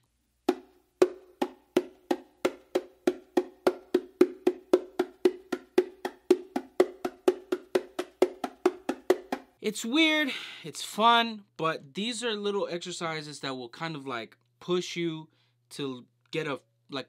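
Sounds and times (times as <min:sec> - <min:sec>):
hand slaps on bongo drum: 0:00.5 - 0:09.6.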